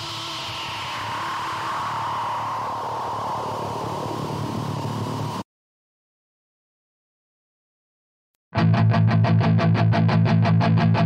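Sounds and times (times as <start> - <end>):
distorted guitar amplifier noise: 0.0 - 5.4, 8.6 - 11.0.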